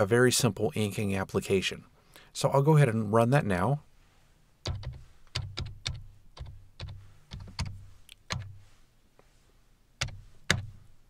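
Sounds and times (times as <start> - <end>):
computer keyboard keystrokes: 4.6 - 8.5.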